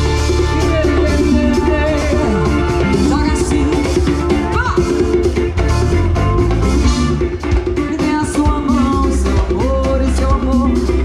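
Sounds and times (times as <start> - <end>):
live band playing: 0.0 - 11.0
woman singing into a microphone: 0.4 - 5.0, 7.8 - 11.0.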